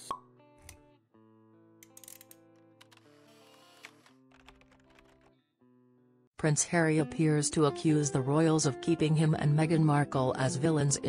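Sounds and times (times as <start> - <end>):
soft background music: 6.4 - 11.0.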